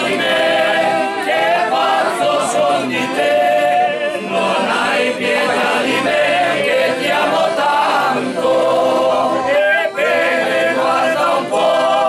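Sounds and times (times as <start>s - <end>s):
voices singing unaccompanied: 0.0s - 12.0s.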